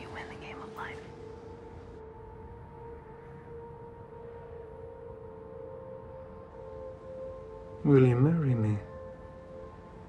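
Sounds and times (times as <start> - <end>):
woman whispering: 0.0 - 1.1
quiet steady drone: 0.0 - 10.0.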